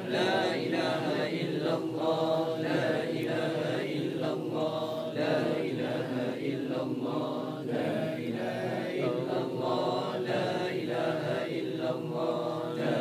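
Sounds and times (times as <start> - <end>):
men chanting: 0.0 - 13.0.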